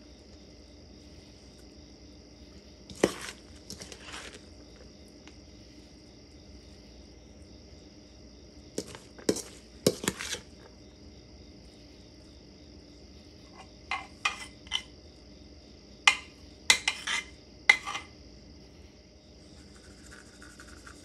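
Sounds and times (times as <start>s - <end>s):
cup scraping and knocking cabbage: 2.9s - 4.8s, 8.8s - 10.7s, 13.5s - 14.9s, 16.1s - 18.1s.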